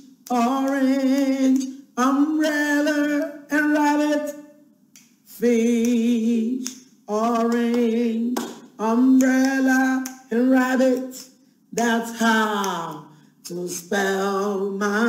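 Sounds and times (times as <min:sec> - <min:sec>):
woman singing unaccompanied: 0:00.2 - 0:04.5, 0:05.3 - 0:15.0.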